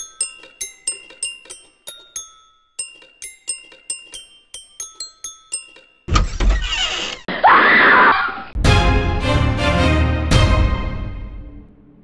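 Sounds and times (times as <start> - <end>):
loud scream: 7.3 - 8.5
music: 8.6 - 12.0.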